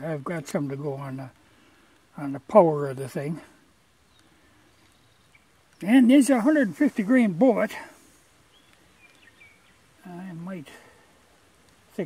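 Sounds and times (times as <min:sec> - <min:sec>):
man speaking: 0:00.0 - 0:01.4, 0:02.2 - 0:03.6, 0:05.8 - 0:08.1, 0:10.0 - 0:11.0.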